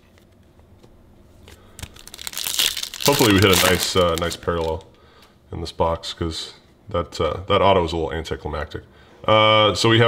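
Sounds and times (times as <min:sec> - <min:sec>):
foil wrapper crinkling: 0:01.6 - 0:05.0.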